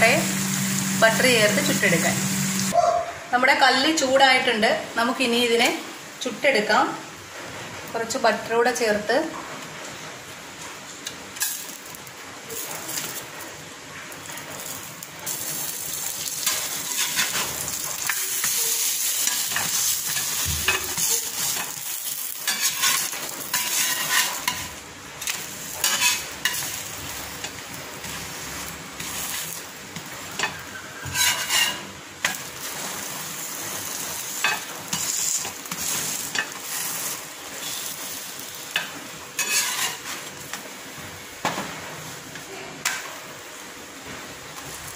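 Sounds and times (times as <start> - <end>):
flatbread sizzling in butter: 0.0 - 2.8, 11.4 - 41.0
metal spatula scraping a pan: 16.3 - 26.8, 30.4 - 32.7, 34.4 - 38.0, 39.4 - 40.3.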